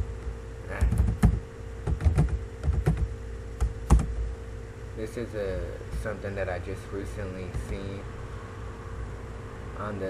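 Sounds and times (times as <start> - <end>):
steady hum: 0.0 - 10.0
keyboard key presses: 0.7 - 4.2.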